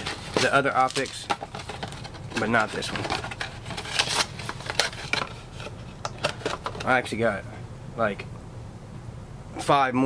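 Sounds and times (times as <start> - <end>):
packs rustling and tearing: 0.0 - 6.8.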